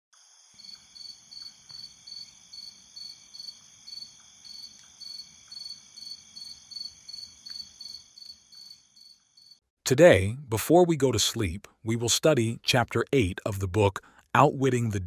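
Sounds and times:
cricket chirping: 0:00.2 - 0:09.7.

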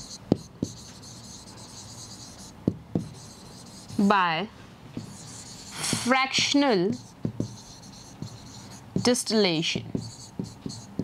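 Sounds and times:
chalk tapping on board: 0:00.0 - 0:04.2, 0:04.9 - 0:11.0
chalk scratching on chalkboard: 0:00.0 - 0:04.3, 0:05.0 - 0:11.0.

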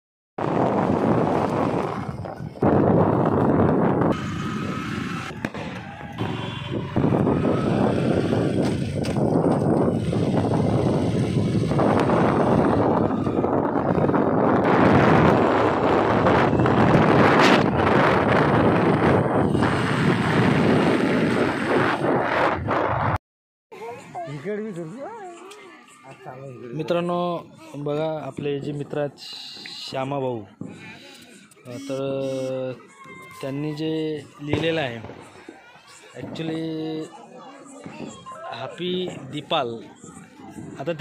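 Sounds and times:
wind noise on microphone: 0:00.4 - 0:23.2, 0:37.8 - 0:41.0.

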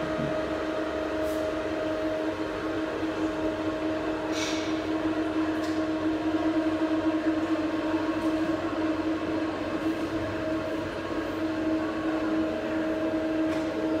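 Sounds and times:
steady machine hum: 0:00.0 - 0:14.0.

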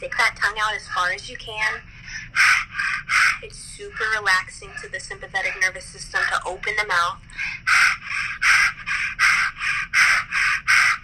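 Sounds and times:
person panting rapidly: 0:01.9 - 0:05.7, 0:07.3 - 0:11.0.

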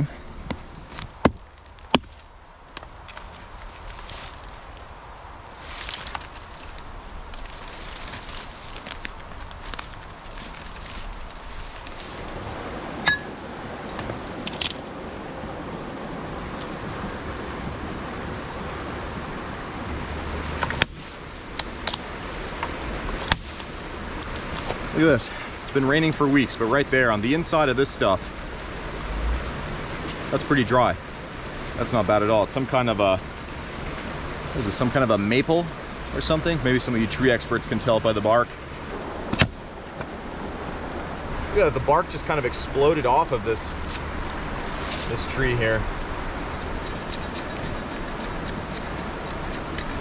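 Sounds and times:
twigs cracking: 0:00.4 - 0:12.6, 0:14.0 - 0:14.9, 0:20.5 - 0:25.0, 0:43.8 - 0:50.0
footsteps crunching through wet leaves: 0:00.9 - 0:12.6, 0:43.6 - 0:47.1
creek rushing: 0:05.5 - 0:50.0.

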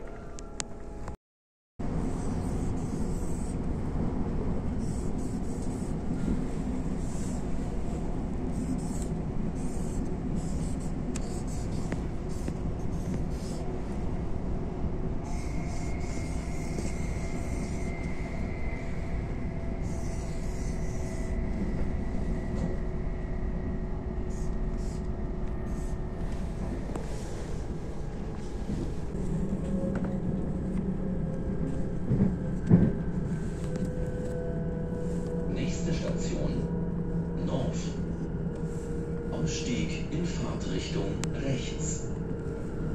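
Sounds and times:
train rumble: 0:01.8 - 0:42.9
marker pen scratching: 0:08.6 - 0:13.6, 0:15.3 - 0:17.6.

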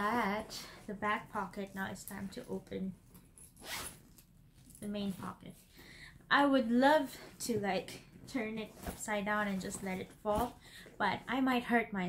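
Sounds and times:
handbag zipper pulled open: 0:03.4 - 0:04.3.

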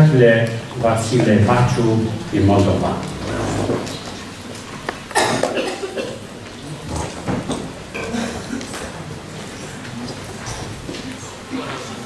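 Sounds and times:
person coughing: 0:05.1 - 0:06.3, 0:07.9 - 0:08.7.

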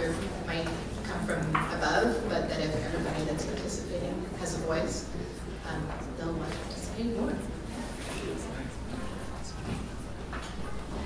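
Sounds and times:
people talking indistinctly: 0:00.0 - 0:10.1.

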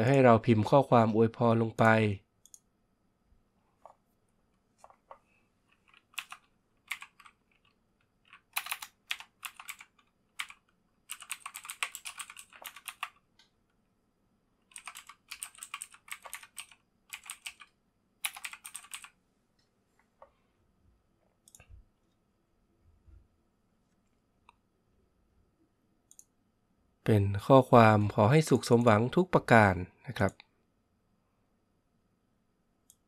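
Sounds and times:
computer keyboard typing: 0:04.8 - 0:13.3, 0:14.6 - 0:19.2.

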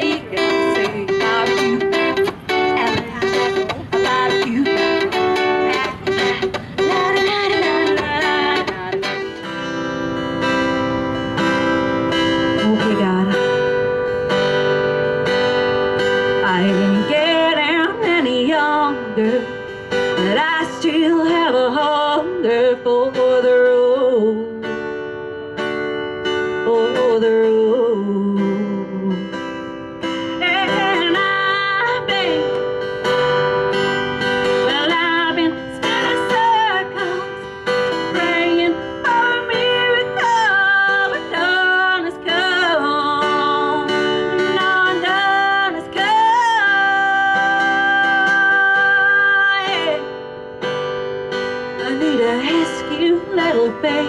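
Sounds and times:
strummed acoustic guitar: 0:00.0 - 0:54.0
woman singing country song: 0:00.0 - 0:54.0.

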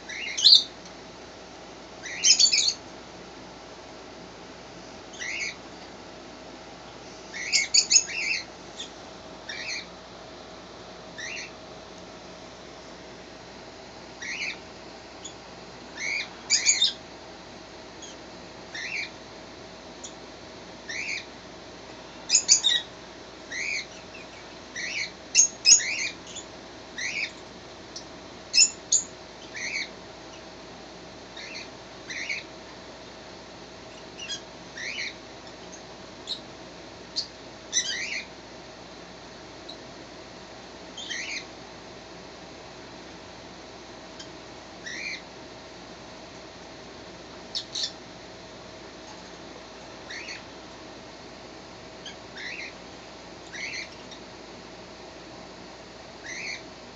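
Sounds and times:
fox kit squeaky chirps: 0:02.1 - 0:02.8.

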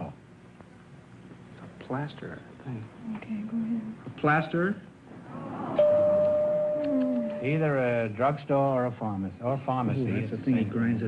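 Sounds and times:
steady signal tone: 0:05.8 - 0:07.6.

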